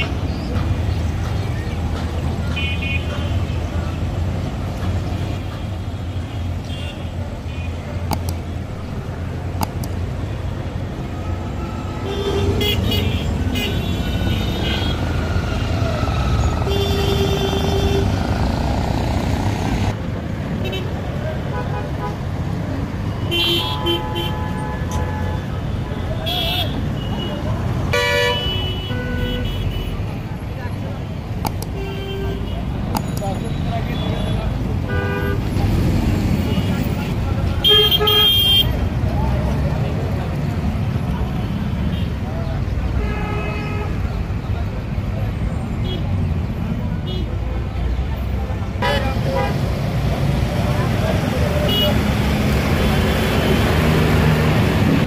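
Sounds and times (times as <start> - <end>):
traffic rumble of engines and tyres: 0.0 - 55.0
vehicle horns honking: 2.6 - 3.5, 11.2 - 15.2, 16.4 - 18.2, 23.1 - 30.1, 31.6 - 35.6, 36.4 - 38.8, 48.8 - 49.7, 51.6 - 52.1.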